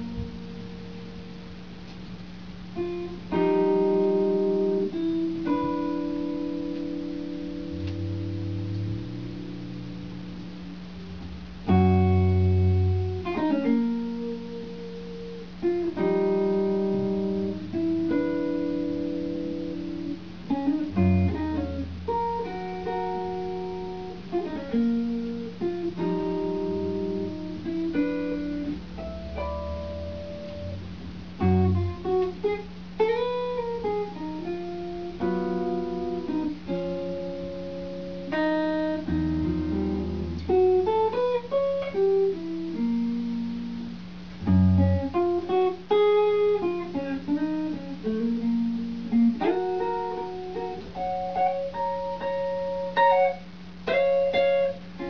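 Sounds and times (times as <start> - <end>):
electric guitar notes and chords: 0.0 - 55.0.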